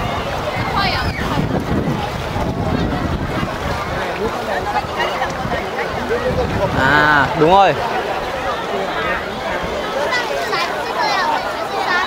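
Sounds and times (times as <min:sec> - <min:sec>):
wind buffeting microphone: 0:00.0 - 0:10.3
faint crowd voices: 0:00.0 - 0:12.0.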